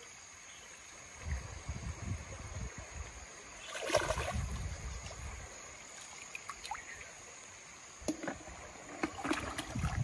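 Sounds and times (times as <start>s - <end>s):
stream water sloshing and splashing: 2.8s - 10.0s.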